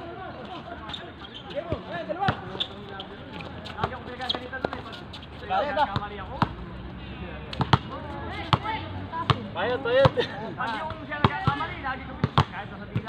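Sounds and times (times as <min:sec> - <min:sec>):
basketball bouncing on concrete: 0:07.6 - 0:07.9, 0:12.2 - 0:13.0.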